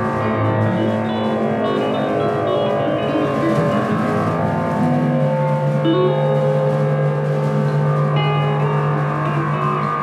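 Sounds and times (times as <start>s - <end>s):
electric guitar and bass drone: 0.0s - 10.0s.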